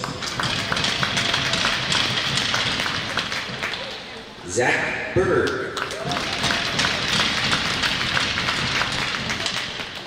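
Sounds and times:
crowd applauding: 0.0s - 4.3s, 5.7s - 10.0s.

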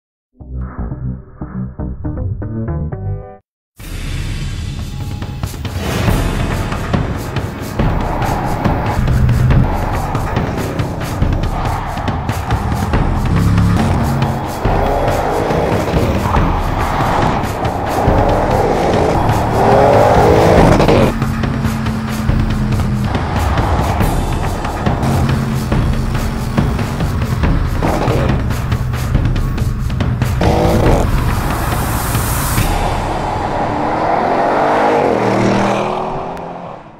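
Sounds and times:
background music with steady beat: 3.8s - 33.6s
car engine accelerating: 7.8s - 36.9s.

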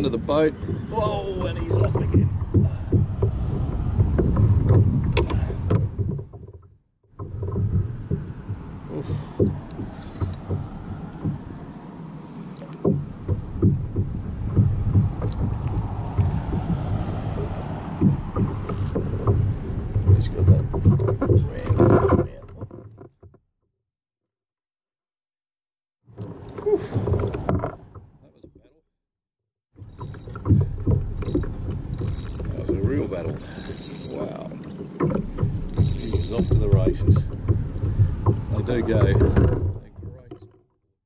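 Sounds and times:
water: 0.0s - 23.4s, 26.1s - 28.8s, 29.8s - 40.9s
wind: 0.0s - 24.5s, 26.0s - 28.9s, 29.6s - 41.0s
knocks on plastic kayak: 12.8s - 22.3s, 36.4s - 39.8s.

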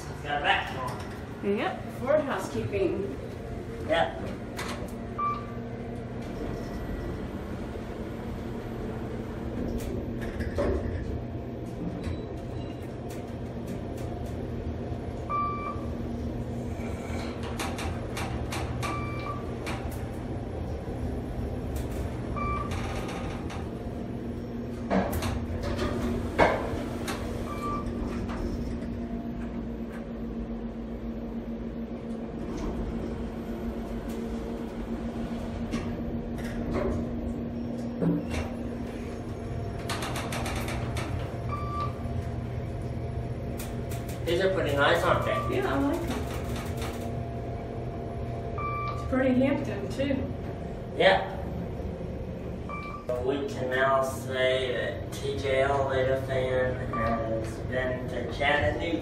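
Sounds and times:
elevator car humming: 0.0s - 59.0s.

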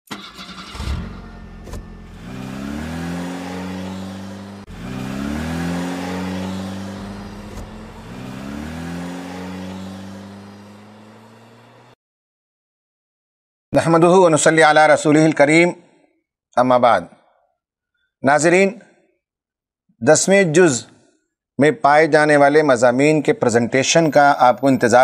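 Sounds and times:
engine revving: 0.1s - 12.0s.

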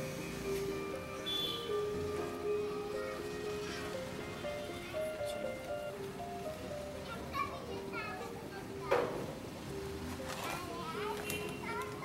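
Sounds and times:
held music notes: 0.0s - 8.8s
children's voices and shouts: 7.0s - 9.2s, 10.5s - 12.0s.

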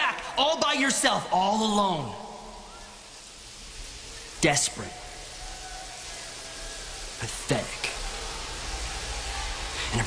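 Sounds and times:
low background ambience: 0.0s - 10.0s.

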